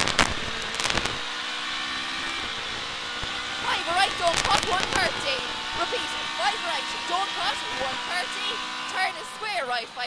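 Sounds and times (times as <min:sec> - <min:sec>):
sharp cracks: 0:00.0 - 0:03.5
car engine at full throttle: 0:00.0 - 0:10.0.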